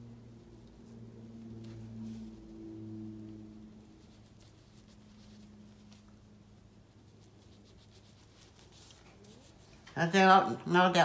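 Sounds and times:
low hum of sustained tones: 0.0 - 9.8
brush strokes on paper: 0.4 - 9.8.

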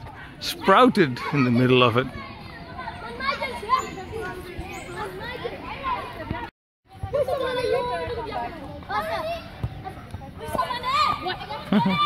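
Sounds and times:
children playing and calling out: 0.0 - 12.0.

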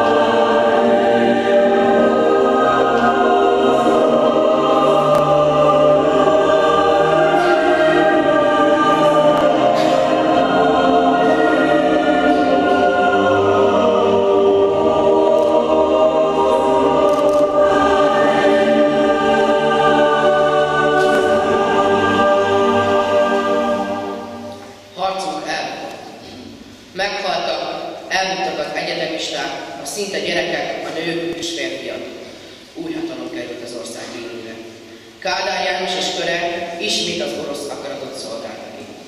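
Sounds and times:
children's choir singing: 0.0 - 26.6.

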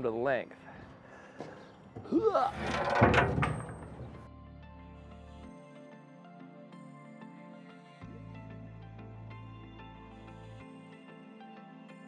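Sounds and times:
metal scraping on wooden deck: 0.8 - 4.3
person grunting with effort: 2.0 - 2.6
soft background music: 4.3 - 12.0.

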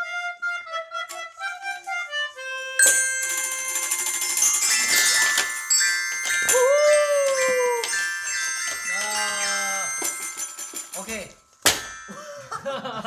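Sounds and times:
toy wind instruments shrill notes: 0.0 - 11.3.

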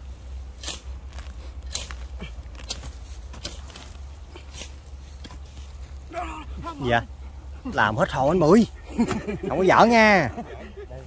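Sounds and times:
spade chopping into soil: 0.5 - 5.7.

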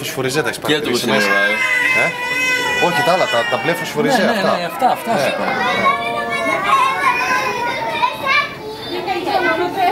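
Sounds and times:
children calling and chattering: 0.4 - 9.9.

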